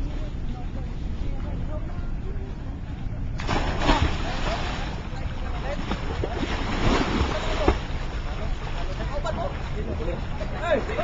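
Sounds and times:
distant voices: 0.0 - 11.0
water splashing against rocks: 3.4 - 8.4.

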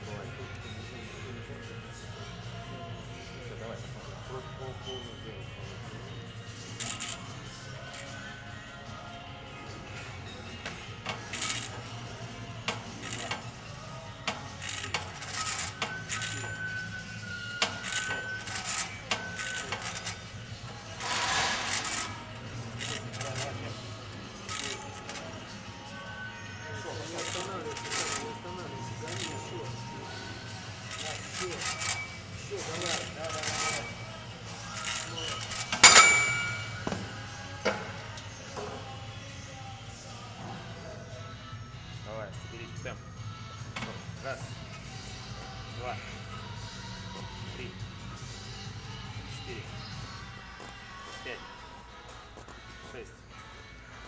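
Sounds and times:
background music: 0.0 - 54.0.

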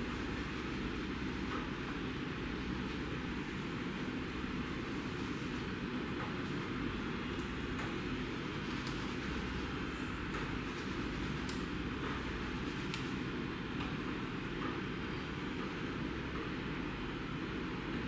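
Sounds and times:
low rumbling background noise: 0.0 - 18.0.

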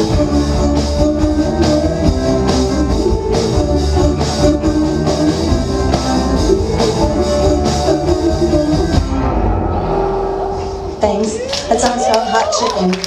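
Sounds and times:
electric bass: 0.0 - 11.0
electric guitars: 0.0 - 11.0
drum kit: 0.0 - 11.1.

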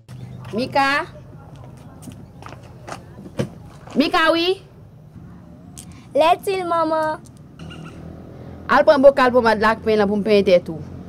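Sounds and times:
soft footsteps: 0.4 - 4.2.

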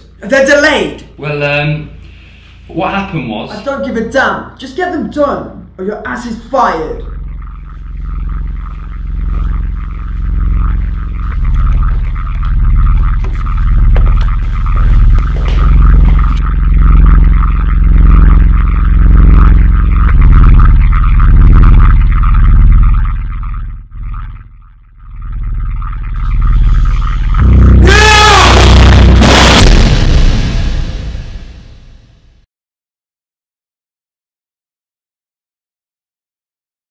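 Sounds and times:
low pulsing drone: 5.4 - 31.9
harsh wavering sting: 6.1 - 31.9.

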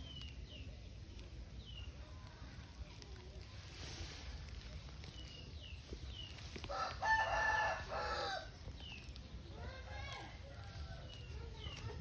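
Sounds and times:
rooster crowing: 6.7 - 8.5.

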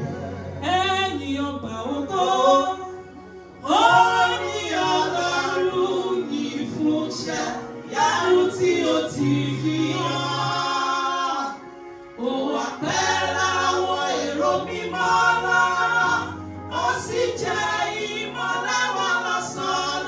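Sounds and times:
women singing gospel: 3.6 - 11.6, 12.2 - 20.0.

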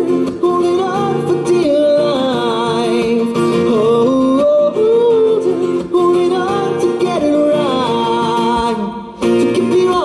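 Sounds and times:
man singing into a microphone: 0.0 - 10.0
strummed acoustic guitar: 0.0 - 10.0.

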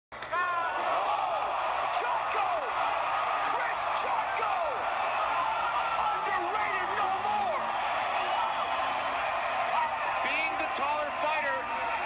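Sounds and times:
arena crowd roaring: 0.2 - 12.0
high excited shout: 0.3 - 12.0.

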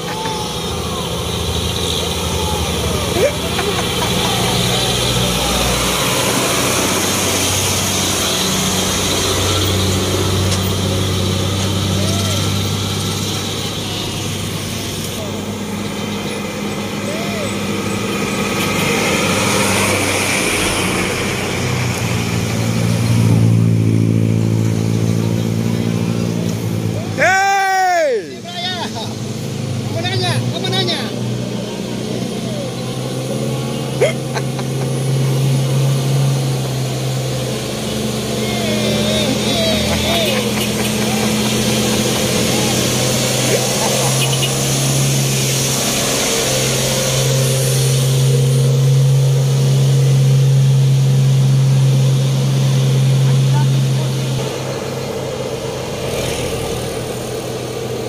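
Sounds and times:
steady traffic noise: 0.0 - 58.0
truck diesel engines climbing: 0.0 - 58.0.

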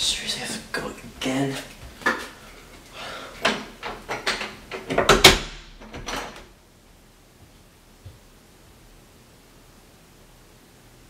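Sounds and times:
door closing and latching: 3.4 - 6.5.

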